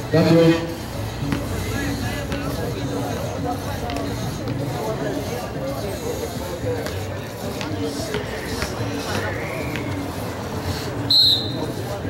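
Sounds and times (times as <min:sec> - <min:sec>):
spectators murmuring: 0:00.0 - 0:12.0
referee's whistle blast: 0:11.1 - 0:11.6.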